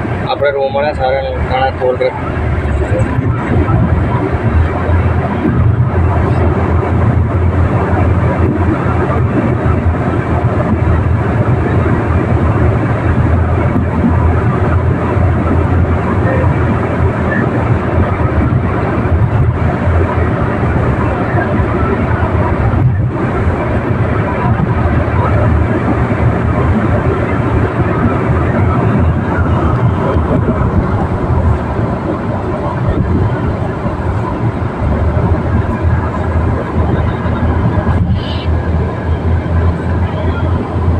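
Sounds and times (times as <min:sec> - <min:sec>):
car engine rumble: 0:00.0 - 0:40.9
tyre and wind noise: 0:02.1 - 0:40.9.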